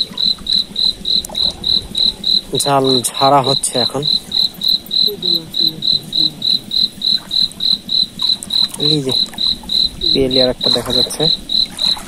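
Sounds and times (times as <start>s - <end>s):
cricket chirping: 0.0s - 12.0s.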